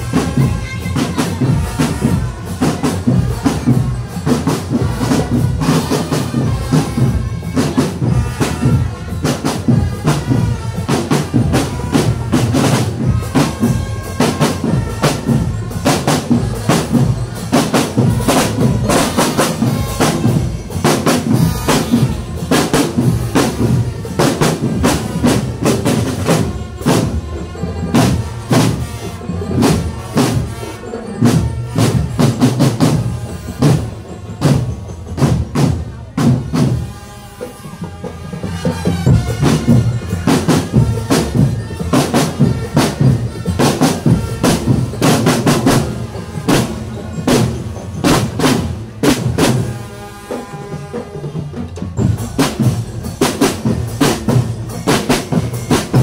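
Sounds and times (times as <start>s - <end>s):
bass drums: 0.0s - 30.6s, 51.6s - 56.0s
marching snare drums: 0.0s - 56.0s.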